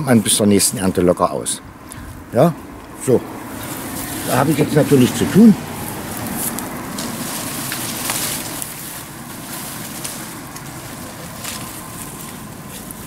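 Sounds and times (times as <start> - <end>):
steady rushing background noise: 1.6 - 13.0
rustling leaves and dry grass: 1.8 - 13.0.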